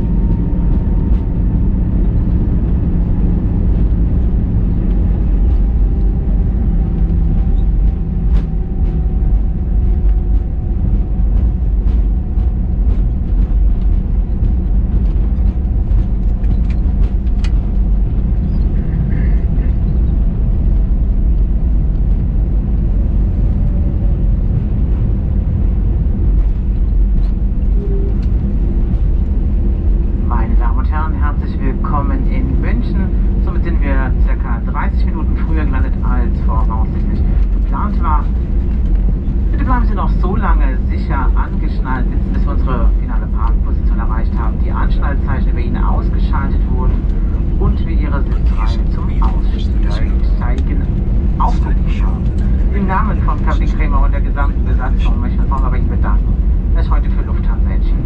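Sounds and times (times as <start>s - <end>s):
airplane cabin rumble: 0.0s - 58.0s
indistinct voices: 39.5s - 58.0s.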